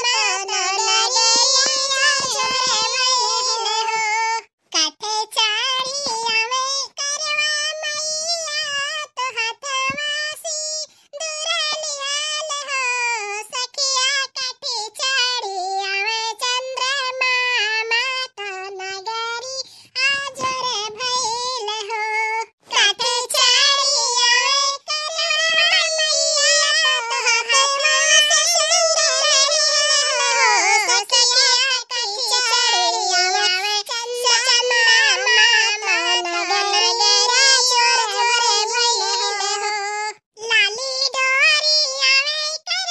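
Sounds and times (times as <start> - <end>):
high-pitched cartoon voice singing: 0.0 - 42.9.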